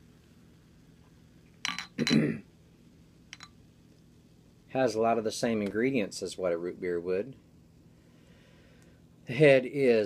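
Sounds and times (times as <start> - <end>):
glassware clinking: 1.6 - 2.4, 3.4 - 3.6.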